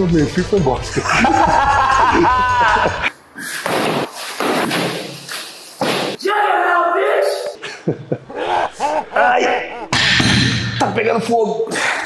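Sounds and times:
men laughing: 0.8 - 3.1, 7.6 - 10.3.

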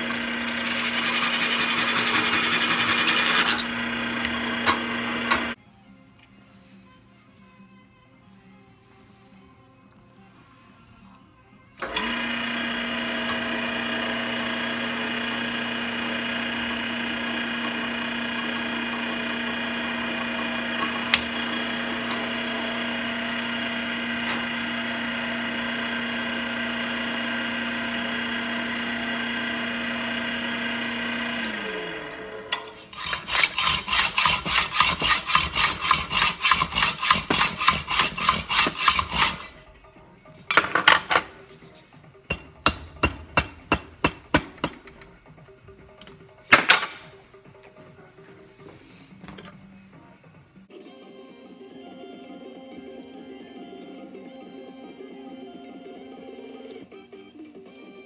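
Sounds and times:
hand sawing strokes: 0.0 - 3.7, 32.7 - 39.6, 42.3 - 44.9
drill press motor running: 0.0 - 5.6, 11.8 - 39.6.

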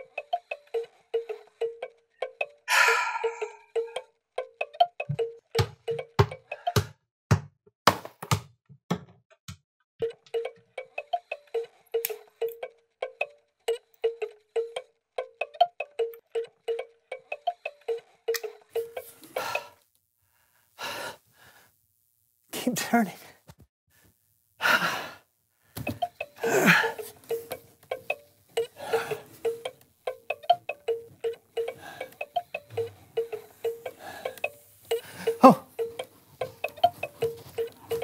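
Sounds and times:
crank box chiming: 26.0 - 38.0.

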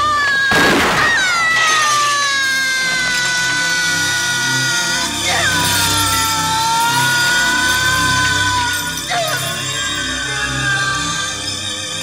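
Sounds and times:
person screaming: 1.2 - 11.4.

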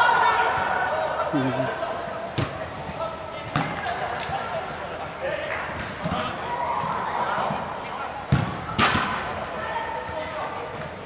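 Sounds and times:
football thud on turf: 8.3 - 9.2.

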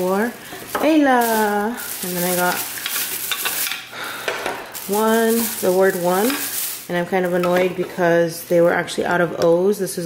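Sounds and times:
plastic bag rustling: 0.0 - 9.0.

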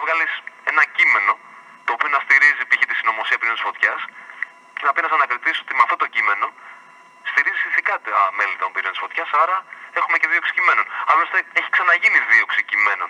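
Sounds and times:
person talking on radio: 0.0 - 13.0.

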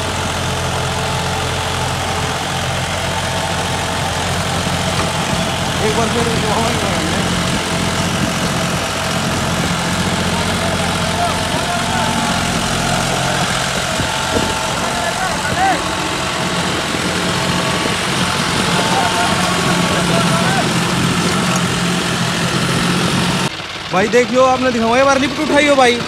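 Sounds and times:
rotavator churning soil: 0.0 - 23.5
tractor diesel engine running: 0.0 - 26.0.

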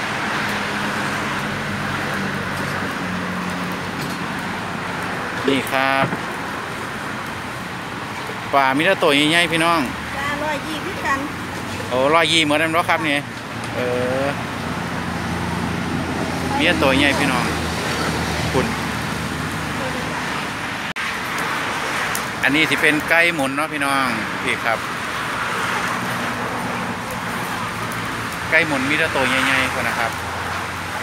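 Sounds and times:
road traffic noise: 0.0 - 31.0.

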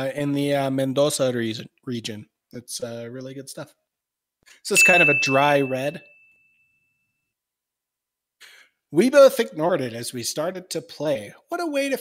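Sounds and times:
wine glass ringing: 4.7 - 6.8.

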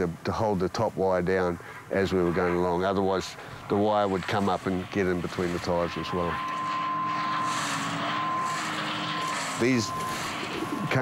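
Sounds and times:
machine running with high whine: 3.2 - 11.0.

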